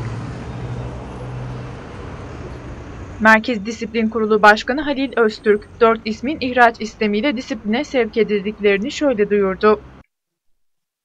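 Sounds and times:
low engine hum: 0:00.0 - 0:10.0
traffic noise: 0:00.0 - 0:10.0.

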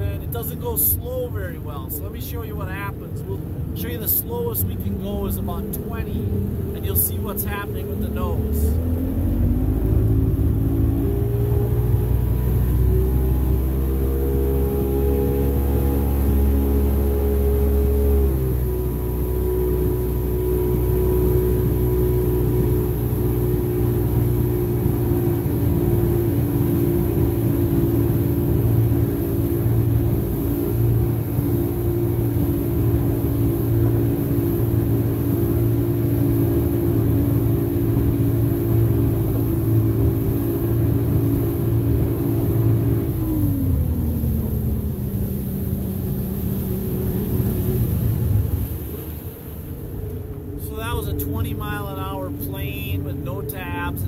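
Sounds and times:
boat engine running: 0:00.0 - 0:54.0
hull and water rumble: 0:00.0 - 0:54.0.

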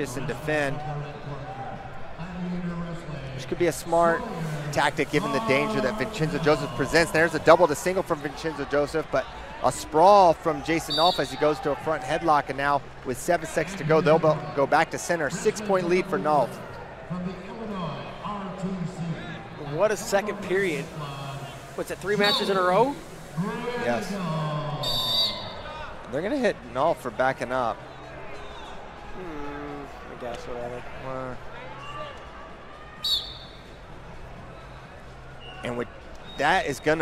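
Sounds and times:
arena background noise: 0:00.0 - 0:37.0.

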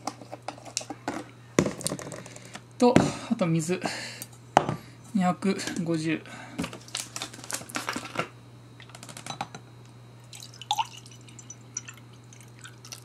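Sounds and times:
water trickling into jug: 0:10.3 - 0:13.0.

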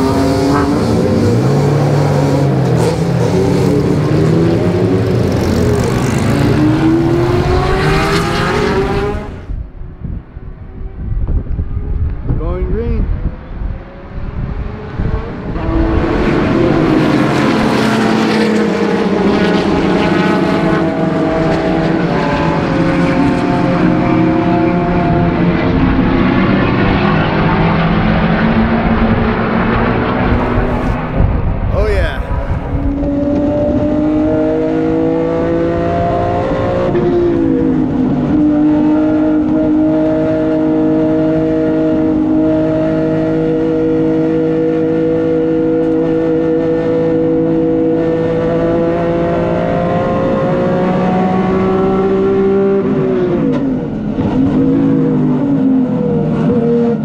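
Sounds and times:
race car engines passing: 0:00.0 - 0:09.6, 0:13.0 - 0:57.0
race car engine from inside cabin: 0:14.2 - 0:31.4, 0:32.4 - 0:57.0.

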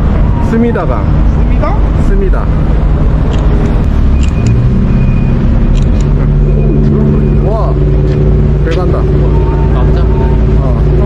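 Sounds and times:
cars passing close by: 0:00.0 - 0:11.0
road traffic rumble: 0:00.0 - 0:11.0.

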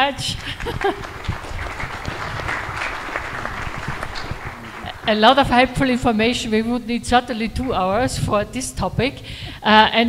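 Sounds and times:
audience applauding: 0:00.4 - 0:05.9.

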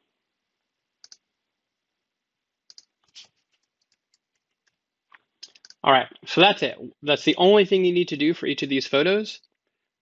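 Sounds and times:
computer mouse clicking: 0:01.0 - 0:01.2, 0:02.7 - 0:05.8.

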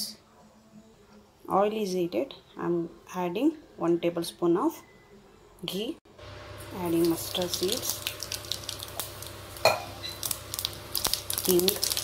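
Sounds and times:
seeds sizzling and popping in oil: 0:06.4 - 0:12.0.

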